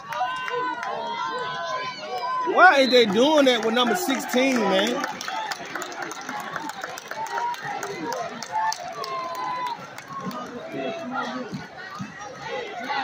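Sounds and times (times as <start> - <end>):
crowd chatter: 0.0 - 13.0.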